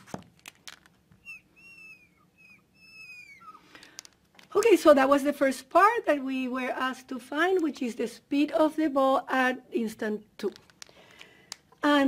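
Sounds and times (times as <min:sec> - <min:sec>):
marker squeaking on glass: 0:01.1 - 0:03.6.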